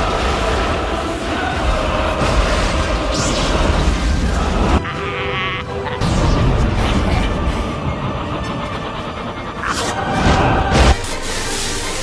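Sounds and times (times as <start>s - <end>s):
dramatic film music: 0.0s - 12.0s.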